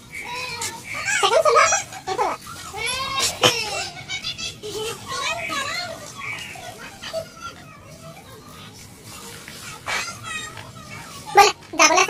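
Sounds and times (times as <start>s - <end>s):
child crying: 0.3s - 5.6s.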